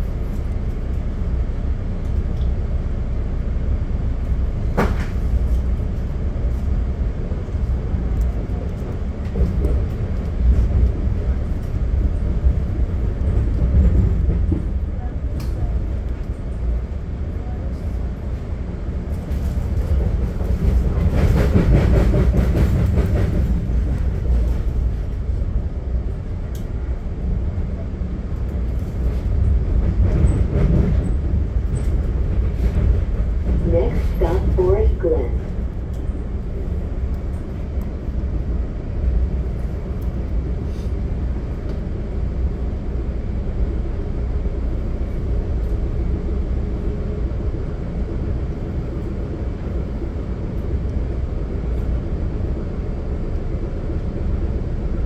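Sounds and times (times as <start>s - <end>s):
train coach rumbling over rails: 0.0s - 55.0s.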